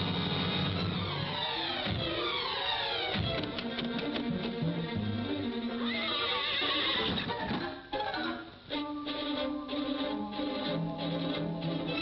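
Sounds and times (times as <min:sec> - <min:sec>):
orchestral cartoon music: 0:00.0 - 0:12.0
horse whinnying: 0:05.8 - 0:08.4.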